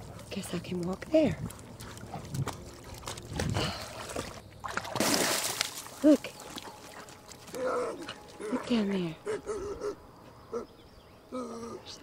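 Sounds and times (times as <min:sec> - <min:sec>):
lake water sloshing and splashing: 0:00.0 - 0:08.9.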